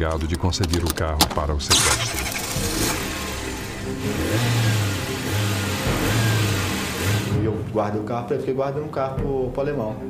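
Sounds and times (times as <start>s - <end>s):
car engine revving: 1.7s - 7.4s.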